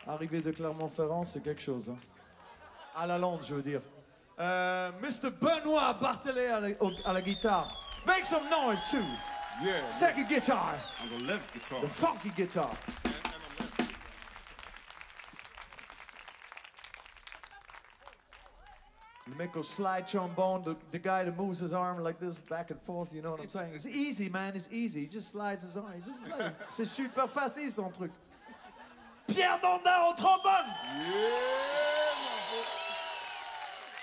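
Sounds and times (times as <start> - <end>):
audience applauding: 0.0 - 2.8, 6.4 - 20.4, 30.2 - 34.0.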